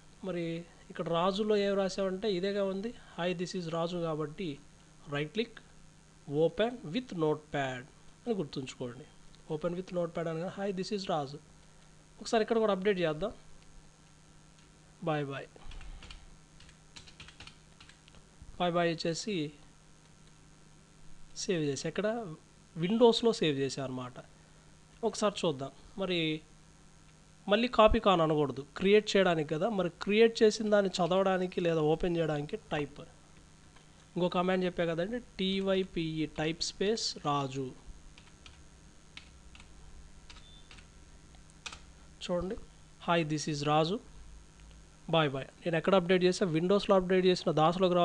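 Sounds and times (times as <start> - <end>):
computer keyboard typing: 15.7 - 18.0, 40.3 - 40.9.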